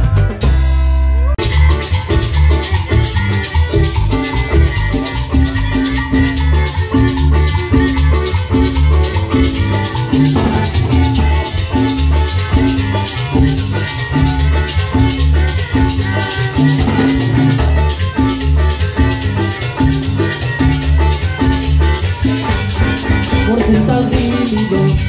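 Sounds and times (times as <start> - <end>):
bass: 0.0 - 25.0
drum kit dance beat: 0.0 - 25.0
electric guitar: 0.0 - 25.0.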